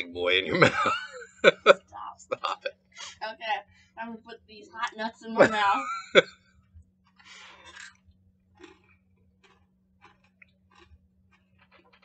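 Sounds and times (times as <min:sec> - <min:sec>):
person laughing: 0:00.0 - 0:03.2, 0:05.3 - 0:06.3
faint steady hum: 0:00.0 - 0:11.8
people chewing crunchy nuts: 0:07.1 - 0:12.0.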